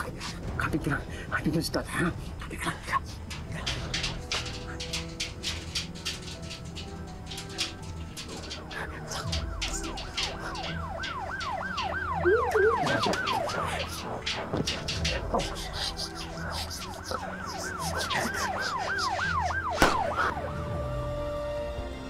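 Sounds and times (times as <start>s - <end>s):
police siren yelping: 9.1s - 21.7s.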